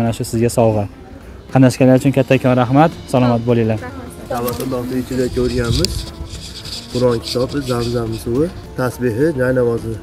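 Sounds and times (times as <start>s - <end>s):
high-pitched insect buzz: 4.3s - 8.8s.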